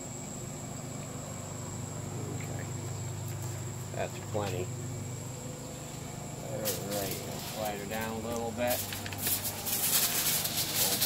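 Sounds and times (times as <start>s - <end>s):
rustling and crinkling: 5.8s - 11.0s.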